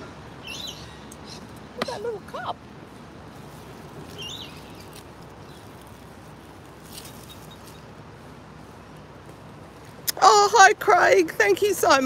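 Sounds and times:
outdoor background noise: 0.0 - 12.0
high bird chirp: 0.4 - 1.4, 4.1 - 5.7.

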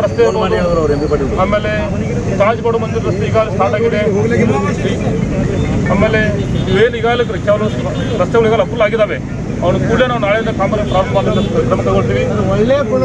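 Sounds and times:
man speaking: 0.0 - 13.0
road traffic rumble: 0.0 - 13.0.

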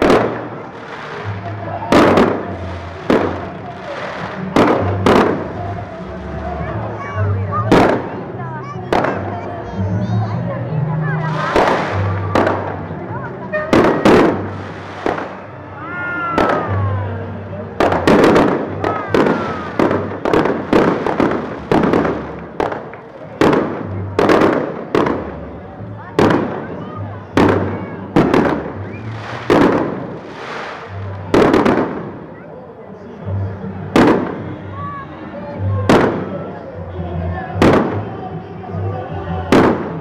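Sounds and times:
fireworks bursting: 0.0 - 6.4, 7.0 - 8.3, 8.9 - 9.4, 11.2 - 15.6, 16.3 - 16.8, 17.8 - 25.5, 26.2 - 26.8, 27.4 - 32.4, 34.0 - 34.4, 35.9 - 36.3, 37.6 - 38.0, 39.5 - 40.0.

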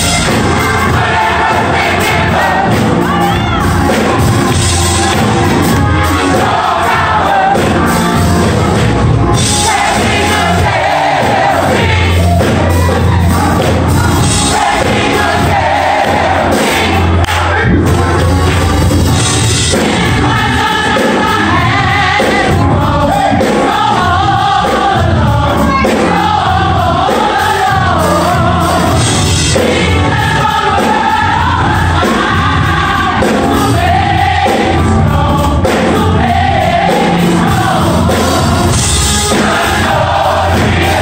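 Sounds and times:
low bass accompaniment: 0.0 - 27.1
gospel choir singing: 0.0 - 41.0.

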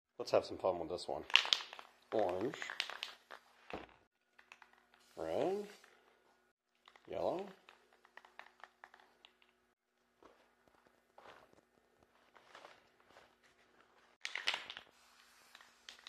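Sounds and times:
newspaper rustling and crinkling: 10.1 - 16.0.

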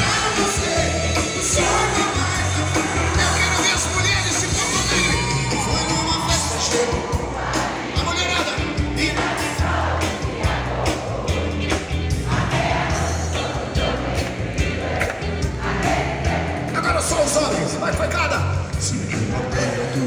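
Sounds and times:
large crowd: 0.0 - 20.0
pop-rock band playing live: 0.0 - 20.0.

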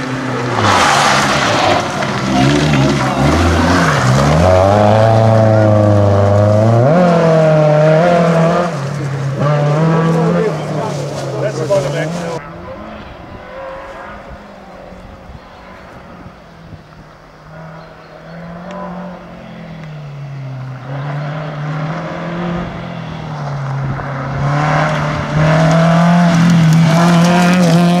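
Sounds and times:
rally car engine passing: 0.0 - 28.0.

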